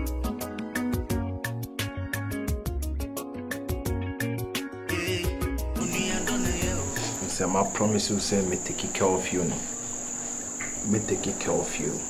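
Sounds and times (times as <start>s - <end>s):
person speaking: 5.8s - 9.8s, 10.8s - 12.0s
cricket chirring: 5.8s - 12.0s.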